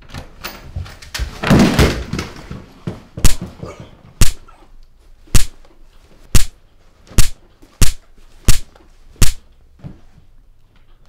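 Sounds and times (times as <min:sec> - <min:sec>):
punches landing: 0:01.4 - 0:04.6, 0:05.3 - 0:05.6, 0:06.3 - 0:09.4.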